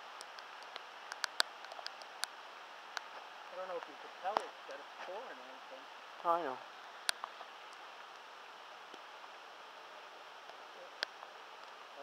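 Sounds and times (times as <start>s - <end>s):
rain hissing: 0.0s - 12.0s
raindrops ticking near microphone: 0.0s - 12.0s.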